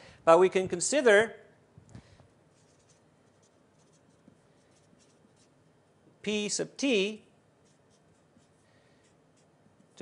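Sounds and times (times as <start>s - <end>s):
writing on a board: 2.5s - 5.6s, 7.6s - 10.0s.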